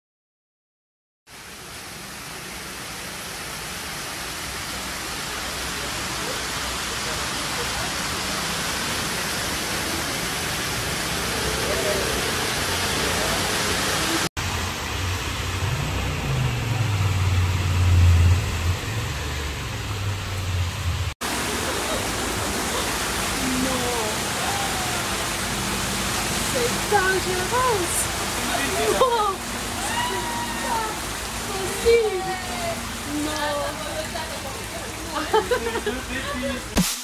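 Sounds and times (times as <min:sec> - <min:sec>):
floodwater rushing down stairs: 0:01.3 - 0:37.0.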